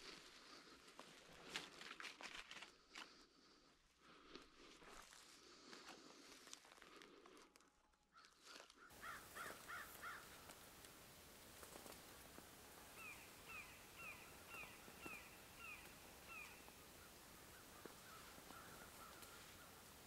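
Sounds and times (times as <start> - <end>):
bird calling: 8.2 - 20.0
faint ticks: 17.8 - 19.6.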